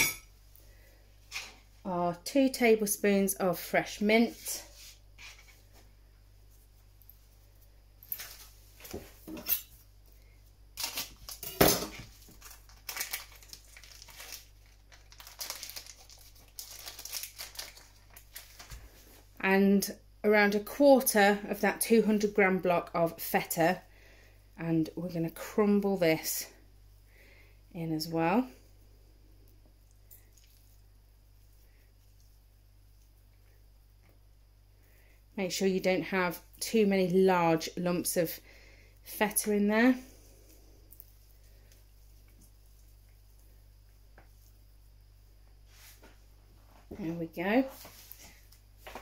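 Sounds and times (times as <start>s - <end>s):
low steady hum: 0.0s - 49.0s
cheese crumbling by hand: 9.7s - 19.1s, 29.4s - 34.3s
plastic packet crinkling: 10.8s - 18.8s.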